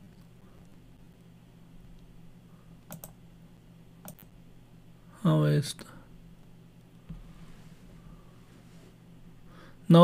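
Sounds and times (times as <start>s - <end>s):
faint low hum: 0.0s - 10.0s
computer mouse clicks: 2.8s - 3.2s, 4.0s - 4.3s.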